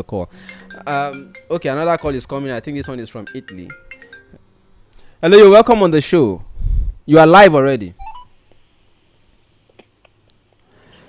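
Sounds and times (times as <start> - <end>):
telephone line hiss: 0.3 - 4.3
phone line beeps: 8.0 - 8.3.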